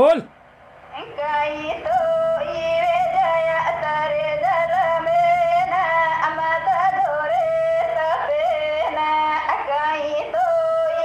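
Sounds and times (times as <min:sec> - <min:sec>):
woman singing devotional song: 0:00.9 - 0:11.0.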